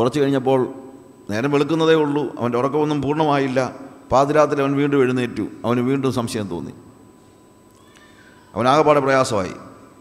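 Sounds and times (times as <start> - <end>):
man preaching through microphone: 0.0 - 6.8, 8.5 - 9.9.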